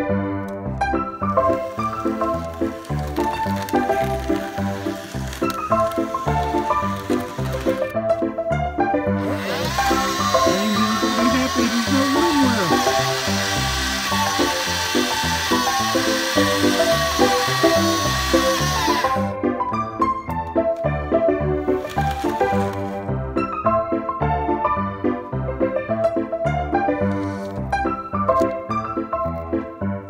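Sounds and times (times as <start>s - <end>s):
old-time background music: 0.0s - 30.0s
small electric motor whining: 1.2s - 7.9s, 9.2s - 19.4s, 21.7s - 23.0s.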